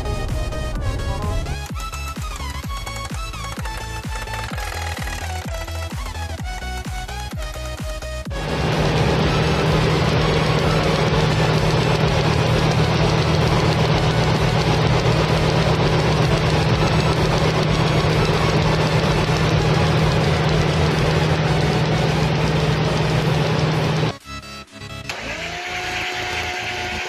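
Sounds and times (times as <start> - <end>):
low engine hum: 8.2 - 24.2
engine rushing noise: 8.3 - 24.2.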